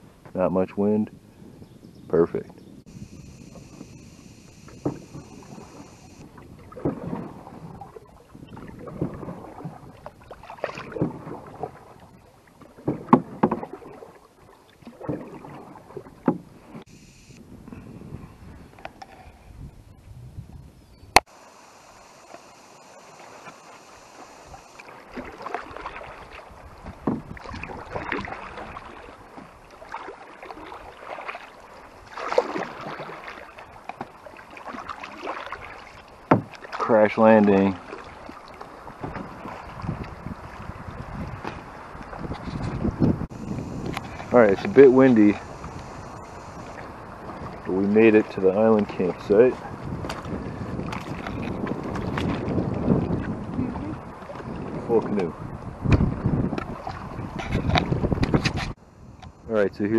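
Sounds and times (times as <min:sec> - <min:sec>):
paddle splashing in water: 0:02.9 - 0:17.3, 0:21.2 - 0:59.4.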